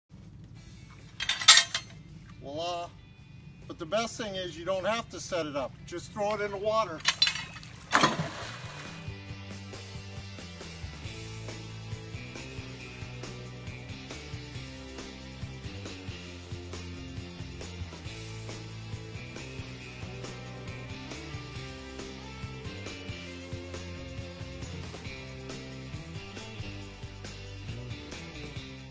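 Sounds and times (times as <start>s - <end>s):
loud splash: 7.8s - 9.1s
music with a steady beat: 9.1s - 28.9s.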